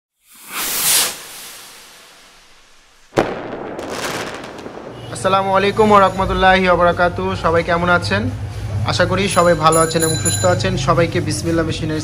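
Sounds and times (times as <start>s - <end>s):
whoosh: 0.2s - 6.4s.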